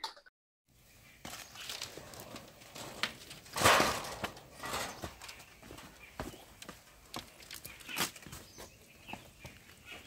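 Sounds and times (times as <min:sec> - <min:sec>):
footsteps on dirt path: 0:03.8 - 0:10.0.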